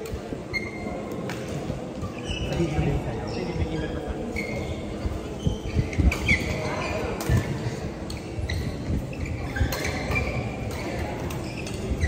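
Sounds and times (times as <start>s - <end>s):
shoes squeaking on court: 0.0s - 12.0s.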